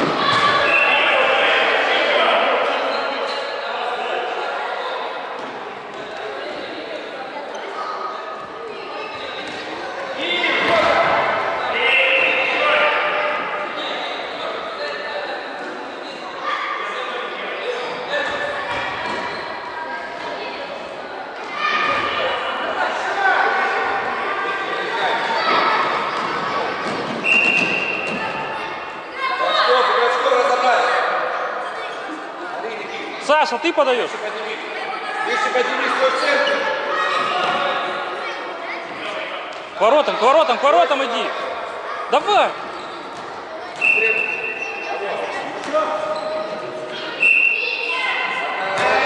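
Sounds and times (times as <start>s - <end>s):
children shouting in echoing hall: 27.9s - 32.1s, 34.8s - 39.3s, 46.7s - 49.0s.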